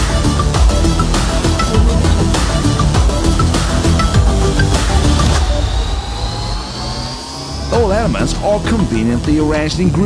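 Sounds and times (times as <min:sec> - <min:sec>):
electronic music with bass: 0:00.0 - 0:10.0
synthesized riser sweeping upward: 0:00.4 - 0:10.0
narrator speaking: 0:07.7 - 0:10.0.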